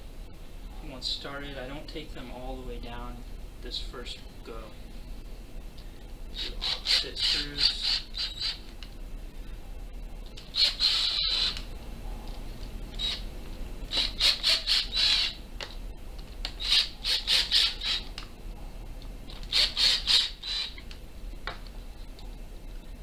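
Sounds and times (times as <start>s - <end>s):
cordless drill driving screws: 10.5s - 11.6s, 13.0s - 13.2s, 13.9s - 15.4s, 16.6s - 18.0s, 19.4s - 20.8s.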